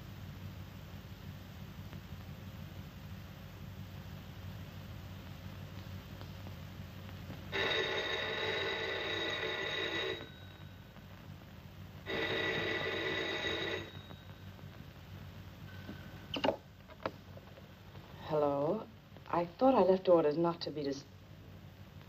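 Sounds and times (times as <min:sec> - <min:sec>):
telephone bell ringing: 0:07.5 - 0:10.8, 0:12.0 - 0:14.6.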